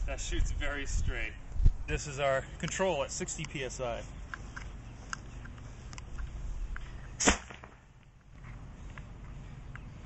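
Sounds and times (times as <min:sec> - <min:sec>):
spud gun bang with ring: 0:07.2 - 0:07.8.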